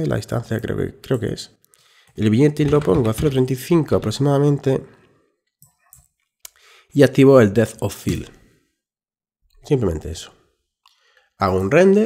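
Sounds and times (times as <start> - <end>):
short breath: 1.7 - 2.2, 6.5 - 6.9, 10.9 - 11.4.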